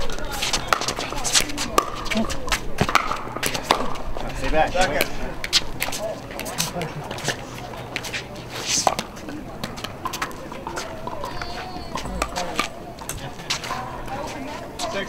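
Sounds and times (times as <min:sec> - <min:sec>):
faint voices: 0:00.0 - 0:15.0
paddles hitting plastic balls: 0:00.2 - 0:04.0.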